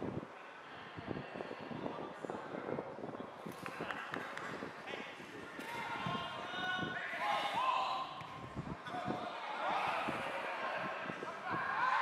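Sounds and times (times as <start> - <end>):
wind buffeting microphone: 0.0 - 7.1, 7.7 - 12.0.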